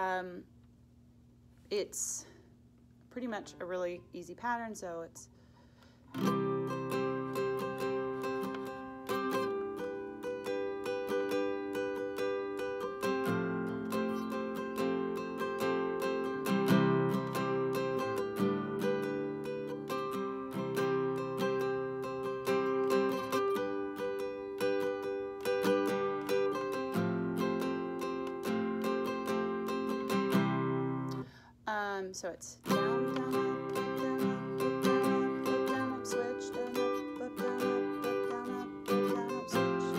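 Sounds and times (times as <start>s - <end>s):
classical guitar strumming: 6.1s - 31.3s, 32.6s - 39.9s.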